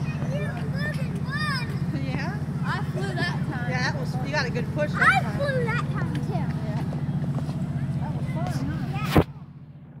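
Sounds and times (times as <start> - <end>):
faint voices: 0.0 - 9.7.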